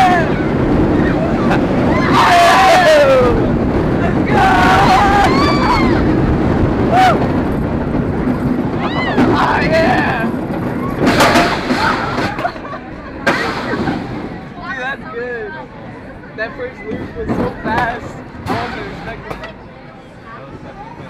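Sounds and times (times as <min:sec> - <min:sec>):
riders shouting and cheering: 0:00.0 - 0:06.2
wind rushing past microphone: 0:00.0 - 0:16.3.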